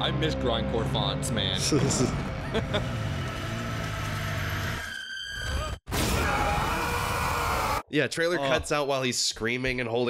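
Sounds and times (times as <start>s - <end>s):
man screaming: 6.1s - 7.8s.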